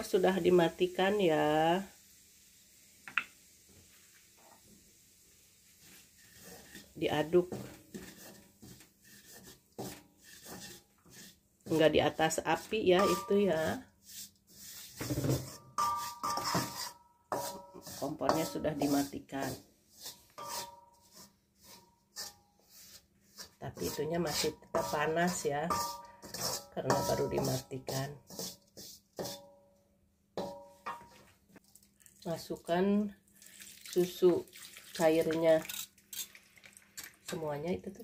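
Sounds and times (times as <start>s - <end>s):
metal spatula scraping wok: 5.7s - 29.5s, 30.4s - 31.2s, 35.7s - 36.3s.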